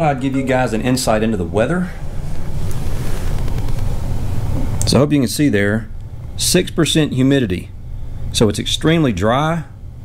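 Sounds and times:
camera handling noise: 2.6s - 3.9s.

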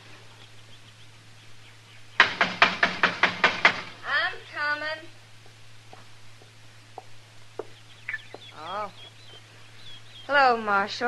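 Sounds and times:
faint high bird chirping: 6.4s - 11.0s
chicken clucking: 7.0s - 10.3s.

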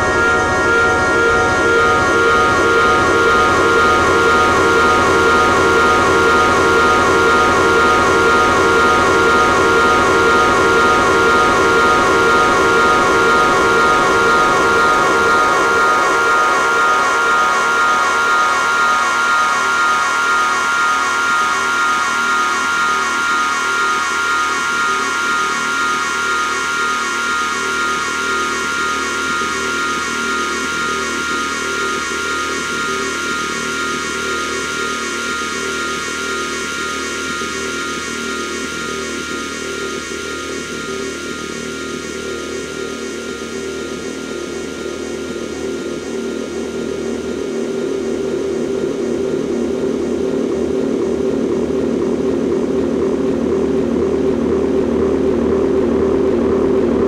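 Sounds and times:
dark electronic drone music: 0.0s - 57.0s.

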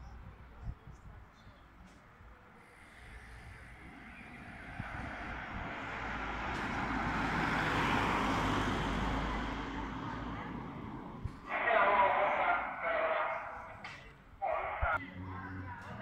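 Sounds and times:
car driving past: 2.8s - 11.4s.

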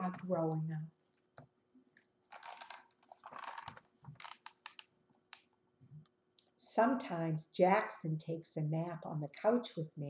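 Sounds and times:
paper pages rustling: 1.0s - 4.9s.

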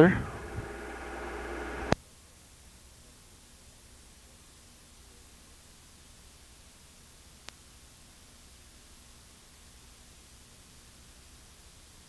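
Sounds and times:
faint steady tones: 0.0s - 2.0s
electrical hum and hiss: 0.0s - 12.0s.

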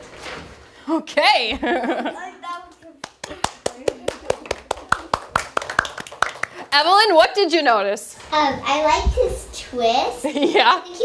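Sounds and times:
small group clapping: 2.5s - 6.8s.

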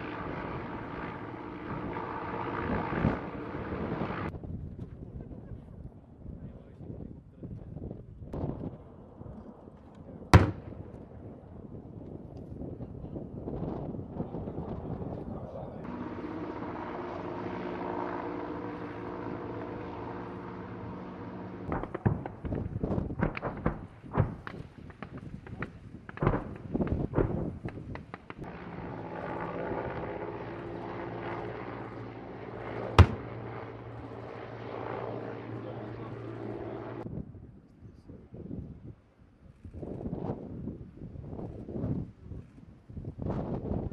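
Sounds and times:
explosions: 10.4s - 11.1s, 21.7s - 28.5s, 32.9s - 33.5s
engine drone: 15.8s - 22.2s, 28.4s - 37.0s.

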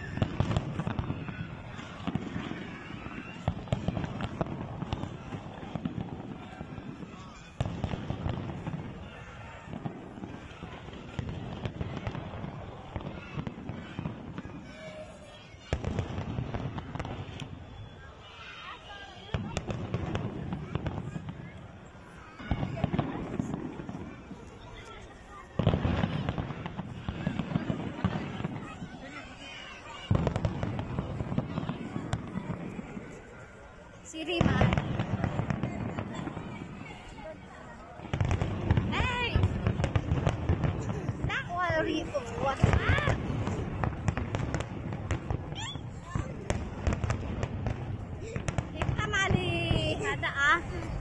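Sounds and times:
loud firework bang: 0.0s - 17.6s, 25.5s - 28.9s, 34.3s - 37.1s, 38.0s - 50.3s
fireworks popping and crackling: 0.0s - 51.0s.

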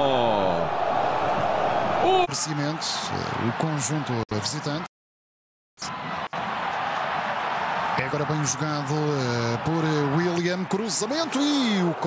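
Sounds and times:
stadium crowd roar: 0.0s - 4.9s, 5.8s - 12.0s.

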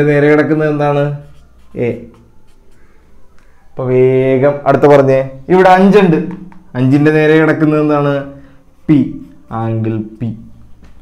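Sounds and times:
marker pen writing on whiteboard: 0.6s - 3.1s, 9.0s - 11.0s.

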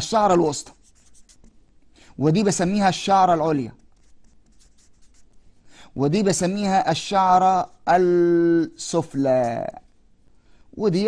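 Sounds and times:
marker pen writing on paper: 0.7s - 1.8s, 3.7s - 5.4s.

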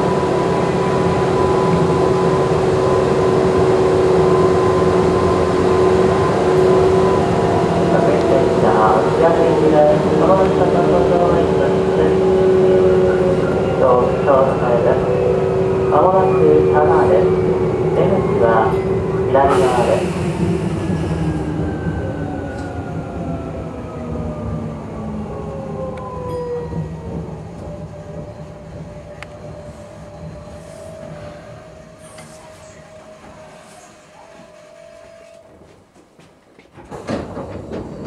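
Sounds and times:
train doors opening: 0.0s - 23.0s, 25.8s - 38.0s.

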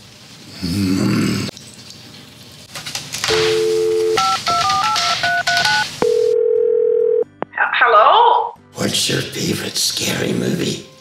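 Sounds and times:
telephone dial tone: 3.3s - 7.3s.

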